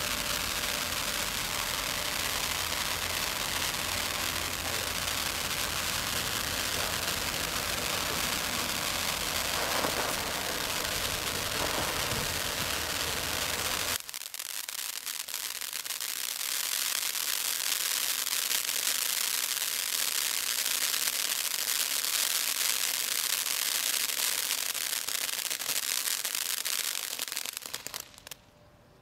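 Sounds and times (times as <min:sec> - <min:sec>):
firework fountain hissing: 0:00.0 - 0:28.4
firework crackling: 0:00.0 - 0:28.5.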